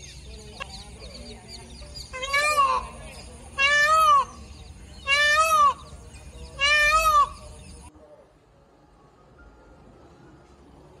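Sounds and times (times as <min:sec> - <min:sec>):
peafowl calling: 0:02.0 - 0:07.5.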